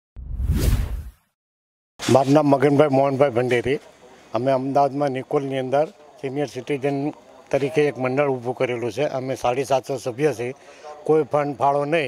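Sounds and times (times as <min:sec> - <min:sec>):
whoosh with deep rumble: 0:00.2 - 0:01.2.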